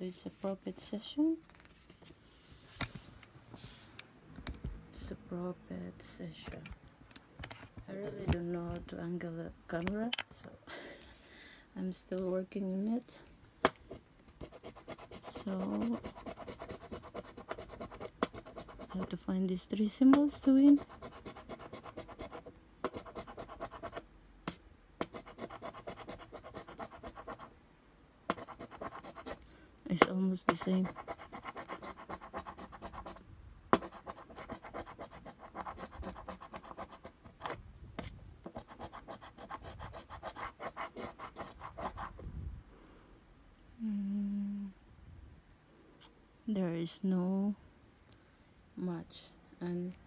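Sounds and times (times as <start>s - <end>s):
coin scraping scratch card: 14.4s - 19.2s, 20.2s - 24.0s, 25.0s - 27.5s, 28.3s - 29.4s, 30.5s - 33.2s, 33.8s - 42.1s
person humming: 43.8s - 44.8s.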